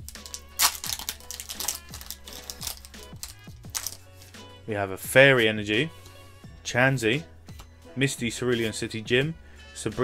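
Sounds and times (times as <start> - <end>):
foil wrapper crinkling: 0.0 - 4.0.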